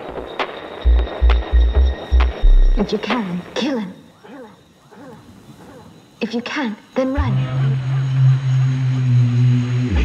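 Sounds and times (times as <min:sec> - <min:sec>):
electronic beat: 0:00.0 - 0:03.6.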